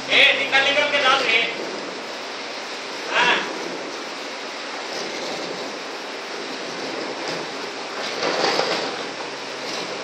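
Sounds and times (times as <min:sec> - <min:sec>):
rushing suction noise: 0:00.0 - 0:10.0.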